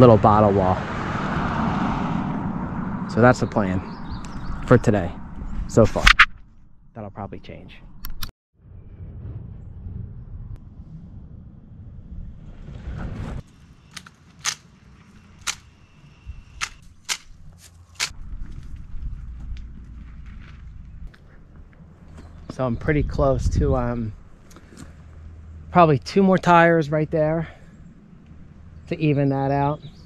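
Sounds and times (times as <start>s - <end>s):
low steady rumble: 8.6s - 13.8s, 14.8s - 30.0s.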